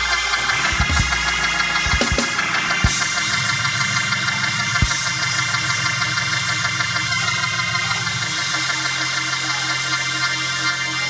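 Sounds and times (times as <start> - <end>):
organ sustained chord: 0.0 - 11.0.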